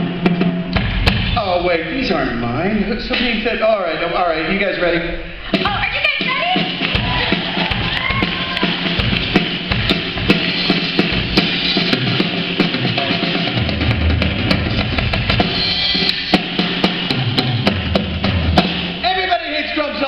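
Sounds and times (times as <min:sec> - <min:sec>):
kick drum: 0:06.9 - 0:10.0.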